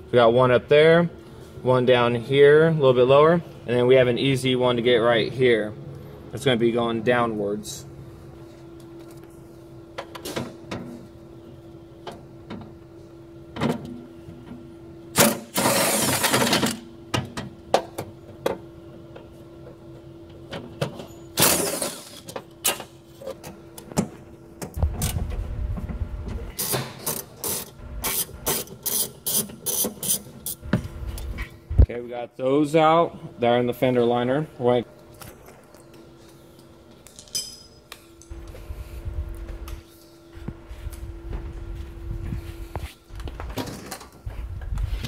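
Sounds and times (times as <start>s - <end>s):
steady hum: 0.0s - 45.0s.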